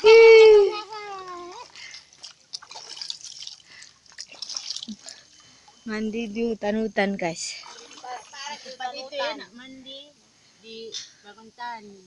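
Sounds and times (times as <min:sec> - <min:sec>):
water dripping: 0:00.9 - 0:08.7
shallow water splashing: 0:01.0 - 0:06.2, 0:07.2 - 0:09.0.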